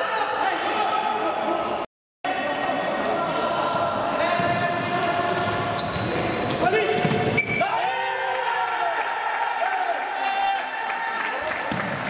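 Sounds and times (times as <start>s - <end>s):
shoes squeaking: 5.1s - 7.6s
ball kicked and bouncing: 7.0s - 7.4s.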